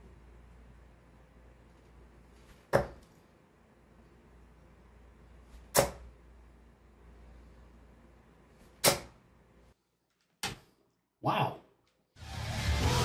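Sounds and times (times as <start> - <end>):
darts thudding into dartboard: 2.5 - 3.0, 5.6 - 6.1, 8.7 - 9.2.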